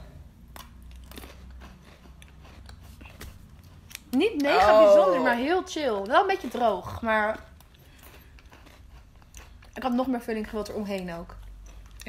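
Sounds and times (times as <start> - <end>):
biscuit sticks crunching: 0.4 - 4.5, 6.0 - 12.0.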